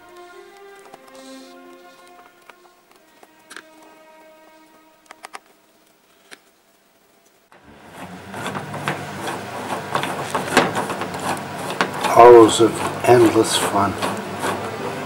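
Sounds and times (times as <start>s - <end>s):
faint music: 0.0s - 15.0s
wooden gears clattering: 7.9s - 14.7s.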